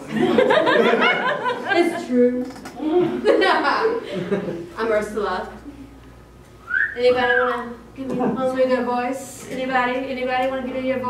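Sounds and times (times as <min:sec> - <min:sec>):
person whistling: 0:06.6 - 0:07.5.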